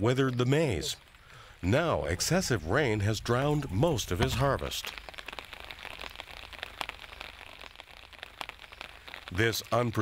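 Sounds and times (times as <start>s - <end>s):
light crackles and rustles: 0.0s - 10.0s
low steady hiss: 0.0s - 10.0s.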